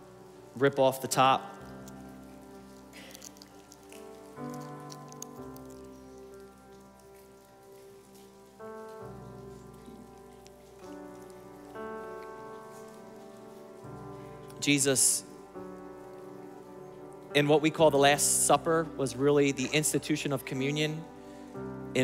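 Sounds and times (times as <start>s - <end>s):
soft keyboard chords: 0.0s - 22.0s
plastic crackling: 0.1s - 14.6s.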